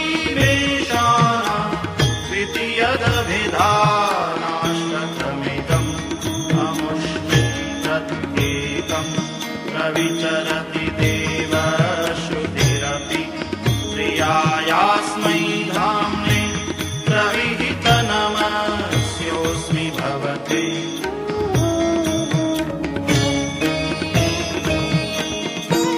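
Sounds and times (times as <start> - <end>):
devotional music gliding melody: 0.0 - 25.9.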